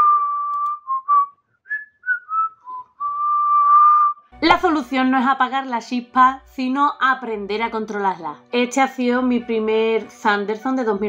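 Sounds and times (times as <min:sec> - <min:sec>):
woman whistling a tune: 0:00.0 - 0:04.2.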